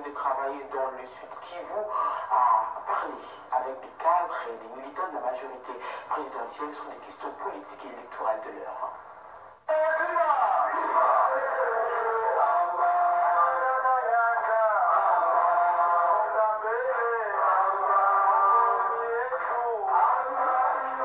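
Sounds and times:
voices singing in unison: 0:09.7 - 0:21.0.

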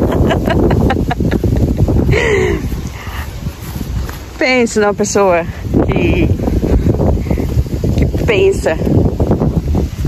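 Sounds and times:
woman laughing: 0:00.0 - 0:02.8
wind rumbling on microphone: 0:00.0 - 0:10.0.

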